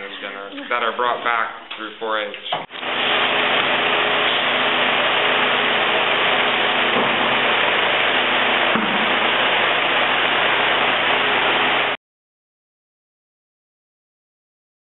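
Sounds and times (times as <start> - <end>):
steady loud hiss: 1.9 - 12.0.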